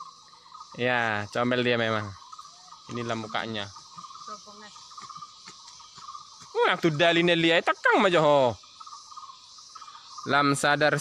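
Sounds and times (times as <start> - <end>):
insect chorus chirring: 0.0 - 11.0.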